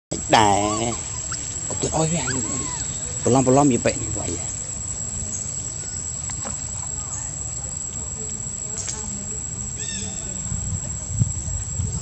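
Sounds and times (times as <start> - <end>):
faint voices: 0.1 - 12.0
high-pitched whine: 0.1 - 12.0.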